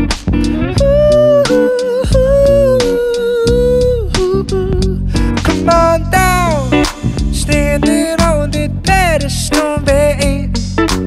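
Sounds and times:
live pop band: 0.0s - 11.0s.

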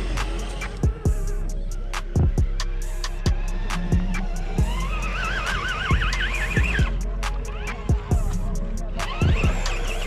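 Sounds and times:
electronic beat with kick drum: 0.2s - 5.1s, 5.9s - 10.0s.

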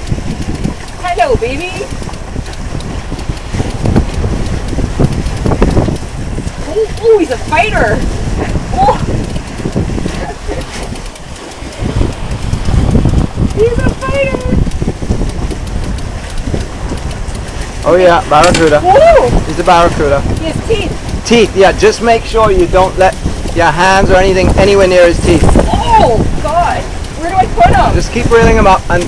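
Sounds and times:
low thumps: 0.0s - 29.0s
sea rushing past hull: 0.0s - 29.0s
wind buffeting microphone: 0.0s - 29.0s.

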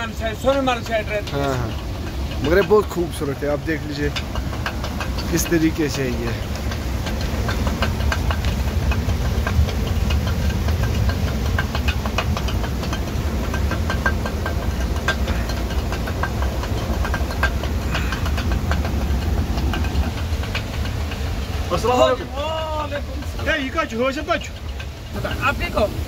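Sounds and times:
millstone low rumble: 0.0s - 26.0s
grain feed clicking: 0.4s - 26.0s.

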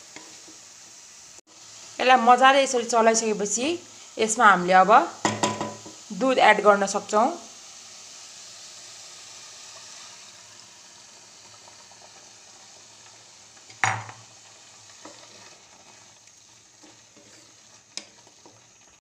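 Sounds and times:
milk sizzling in hot pan: 0.0s - 19.0s
spatula knocking pan: 5.2s - 6.0s, 13.7s - 14.3s
light stirring ticks: 17.9s - 18.6s.

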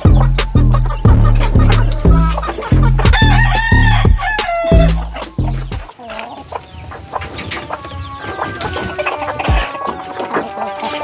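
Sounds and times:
music with heavy bass beat: 0.0s - 5.9s
rooster crowing: 2.0s - 5.2s.

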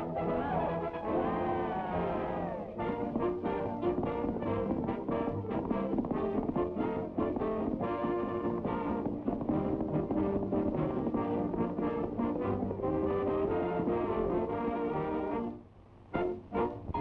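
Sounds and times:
orchestral cartoon music with brass: 0.0s - 17.0s.

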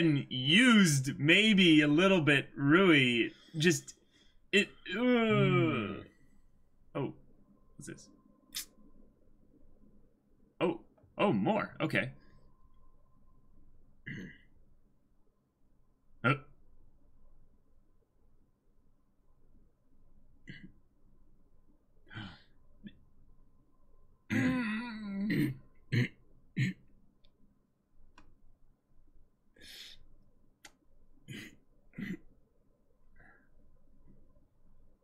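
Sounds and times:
short human vocal sound: 4.9s - 6.1s.

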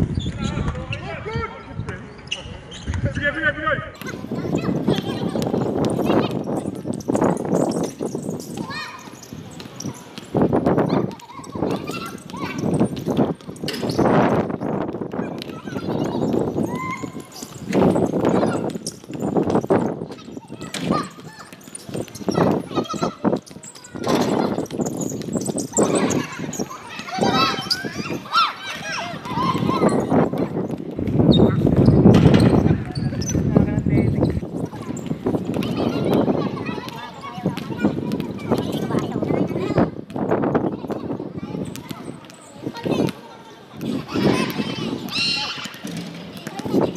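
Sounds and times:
wind rumble on microphone: 0.0s - 2.1s, 4.0s - 8.7s, 10.3s - 21.0s, 29.1s - 42.0s
basketball bouncing on concrete: 4.0s - 33.4s, 34.2s - 41.0s, 41.6s - 46.9s.

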